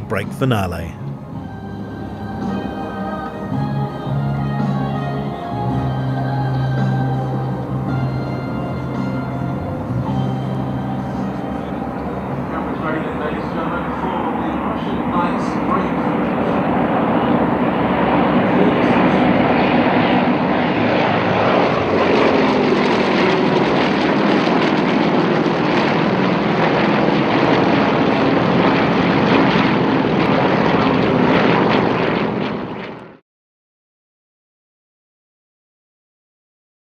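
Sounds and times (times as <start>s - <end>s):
music: 0.0s - 12.4s
aircraft radial engines droning: 1.0s - 33.2s.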